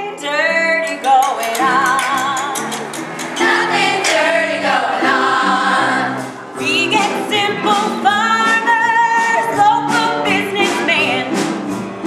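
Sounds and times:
cast singing together: 1.0s - 8.0s.

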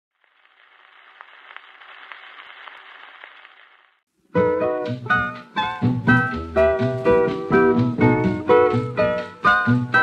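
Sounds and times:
record clicks and crackles: 0.1s - 4.1s
record surface hiss: 0.1s - 10.0s.

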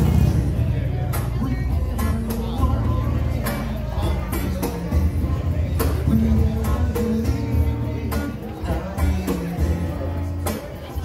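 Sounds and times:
conga drums: 0.0s - 11.0s.

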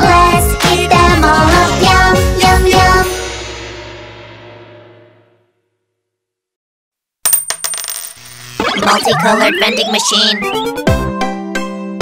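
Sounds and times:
cartoon coin-drop clinks: 7.3s - 8.4s.

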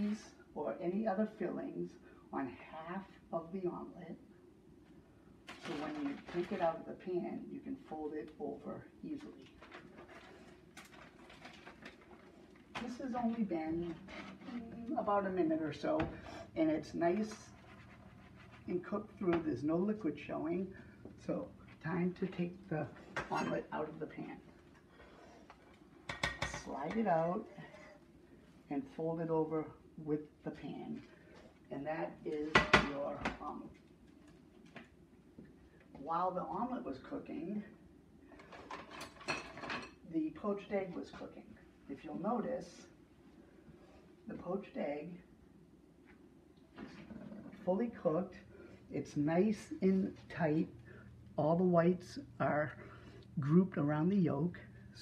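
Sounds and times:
plastic bag crinkling: 9.4s - 12.7s
kitchen utensils clattering: 23.1s - 23.8s, 38.5s - 40.0s.

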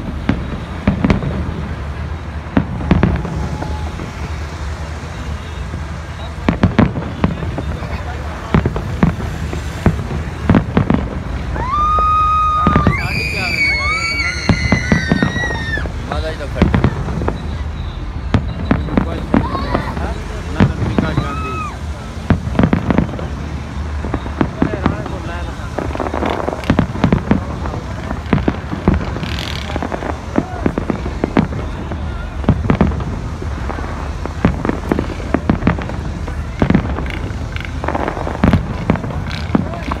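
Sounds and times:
fireworks bangs and crackles: 0.0s - 40.0s
fireworks high whistles: 0.0s - 40.0s.

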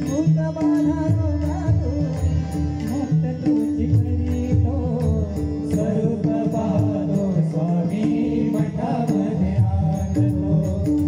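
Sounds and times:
hand drums: 0.0s - 11.0s
harmonium: 0.0s - 11.0s.

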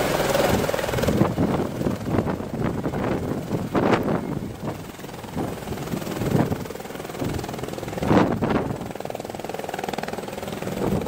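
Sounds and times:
helicopter rotor and engine: 0.0s - 11.0s.

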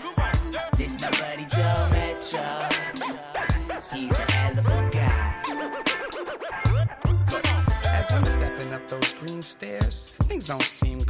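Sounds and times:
hip-hop beat: 0.0s - 11.0s
turntable scratching: 0.0s - 11.0s.

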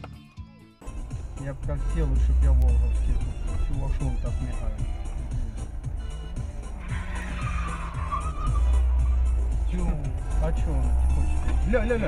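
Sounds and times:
music: 0.0s - 12.0s
car tyres skidding: 0.9s - 12.0s.

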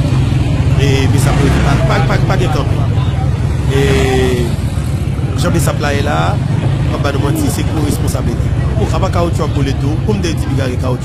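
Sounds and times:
vehicle rumbling on the move: 0.0s - 11.0s.

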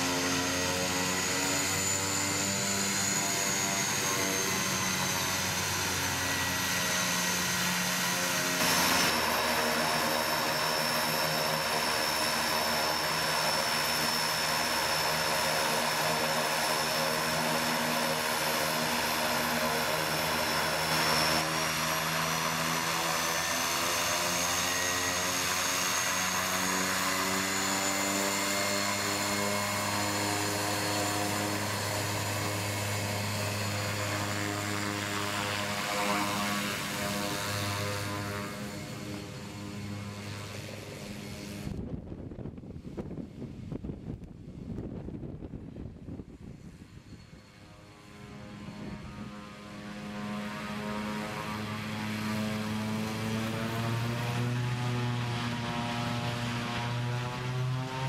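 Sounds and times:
high whine: 0.0s - 23.3s
propeller plane engine droning: 0.0s - 58.0s.

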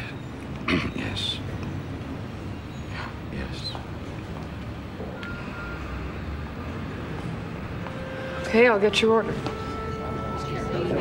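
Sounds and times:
restaurant background rumble: 0.0s - 11.0s.

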